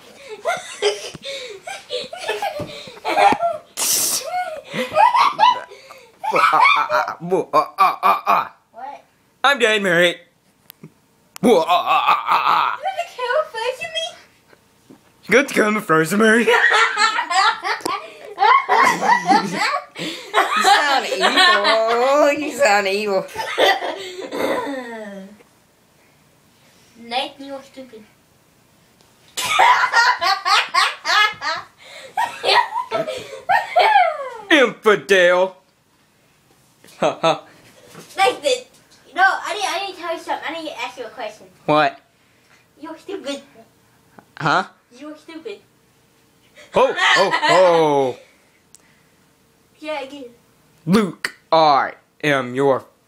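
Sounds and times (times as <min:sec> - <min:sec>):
girl laughing hard: 0:00.3 - 0:07.2, 0:16.5 - 0:22.1, 0:23.4 - 0:25.2, 0:29.4 - 0:34.5, 0:46.8 - 0:47.8
sharp hissing burst of breath: 0:03.8 - 0:04.4
people laughing: 0:16.4 - 0:22.2, 0:46.9 - 0:47.8.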